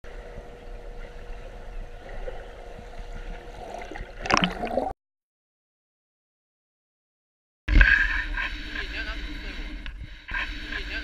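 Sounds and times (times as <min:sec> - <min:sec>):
faint steady hum: 0:00.0 - 0:04.9, 0:07.7 - 0:11.0
muffled underwater rumble: 0:00.0 - 0:04.9
water gurgling: 0:00.1 - 0:04.9.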